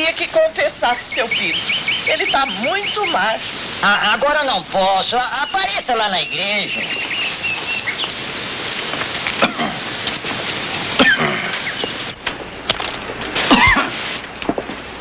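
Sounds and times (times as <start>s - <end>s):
birds calling: 0.0s - 14.2s
steady hiss: 0.0s - 15.0s.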